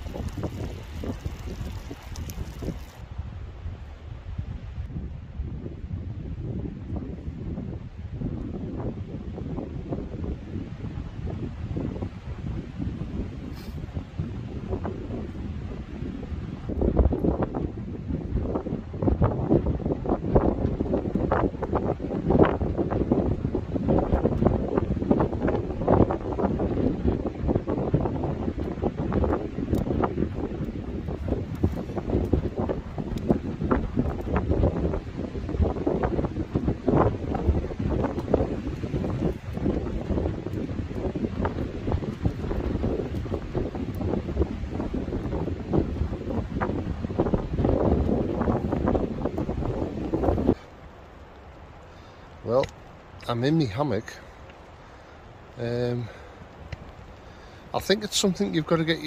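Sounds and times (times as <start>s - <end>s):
wood fire crackling and popping: 0.0s - 3.1s, 10.0s - 59.0s
gusty wind rumble on microphone: 0.0s - 59.0s.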